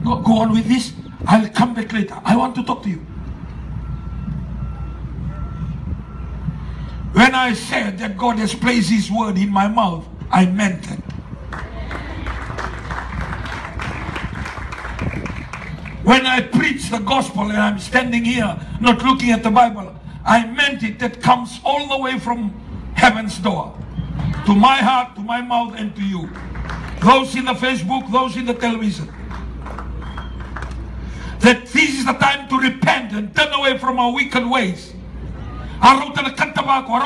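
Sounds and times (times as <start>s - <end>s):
crowd applauding: 11.4s - 16.0s, 26.2s - 27.4s, 29.0s - 30.9s.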